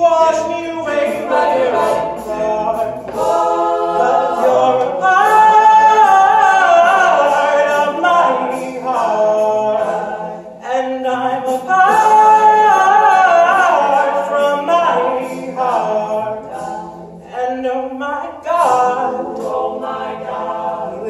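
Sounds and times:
male a cappella group singing: 0.0s - 21.0s.

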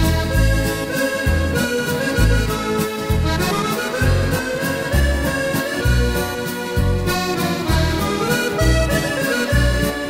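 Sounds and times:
accordion waltz on keyboard: 0.0s - 10.0s.

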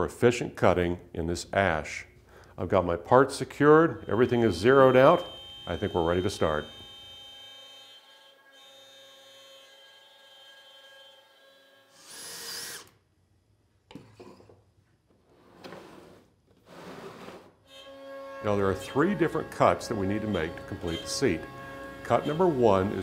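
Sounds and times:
router spindle cutting wood: 3.8s - 12.9s, 17.7s - 23.0s.

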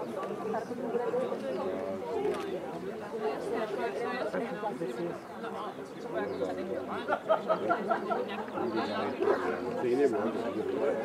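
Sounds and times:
people talking at once: 0.0s - 11.0s.

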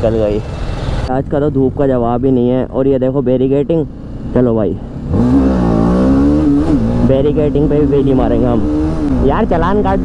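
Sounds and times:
motorcycle engine accelerating: 3.4s - 10.0s.

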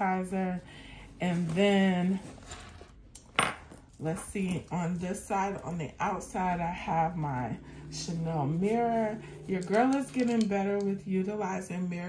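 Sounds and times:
rustling in handbag: 0.4s - 3.1s.

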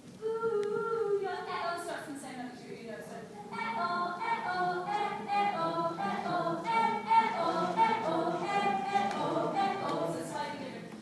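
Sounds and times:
group singing a cappella: 3.5s - 11.0s.

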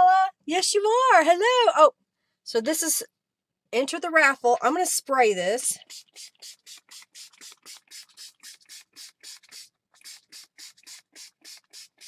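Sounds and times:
spray bottle hisses: 5.8s - 12.0s.

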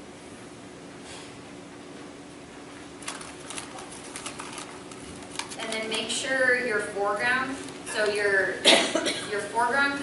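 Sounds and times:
laptop clicking: 3.0s - 6.2s.

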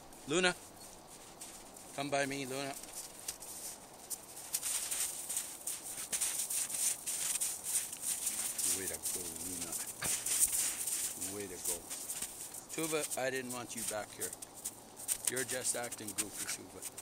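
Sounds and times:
dog paws crunching in snow: 0.0s - 17.0s
man murmuring: 8.6s - 10.2s.

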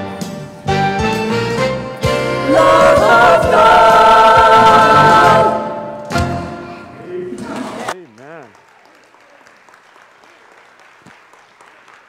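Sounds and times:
instrumental backing: 0.0s - 7.5s
voices singing gospel: 2.1s - 6.4s.

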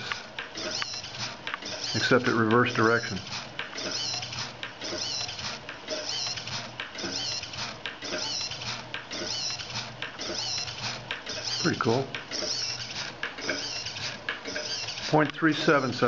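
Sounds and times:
servo whirring with high whine: 0.0s - 16.0s.

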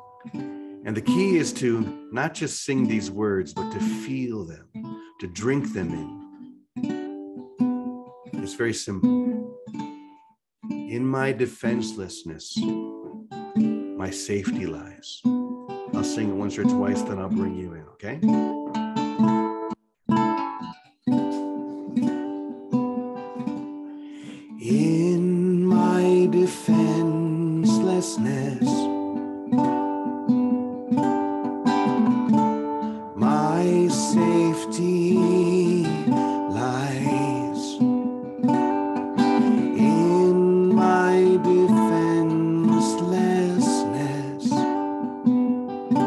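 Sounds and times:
ukulele strumming chords: 0.0s - 9.9s, 10.7s - 46.0s
man singing: 0.9s - 4.6s, 16.0s - 17.6s, 24.2s - 29.0s, 33.2s - 37.9s, 39.4s - 44.8s.

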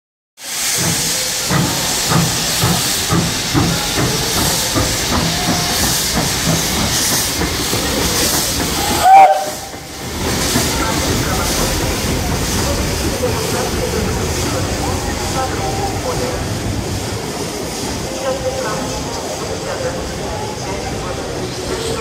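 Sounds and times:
steam hissing: 0.4s - 22.0s
steam locomotive exhaust chuffing: 0.4s - 22.0s.

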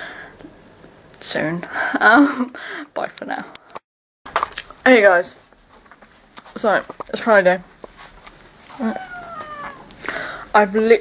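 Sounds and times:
cat meowing: 8.7s - 10.0s.

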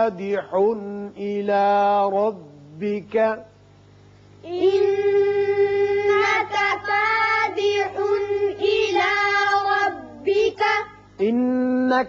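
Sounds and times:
child chanting melodically: 4.4s - 11.1s.

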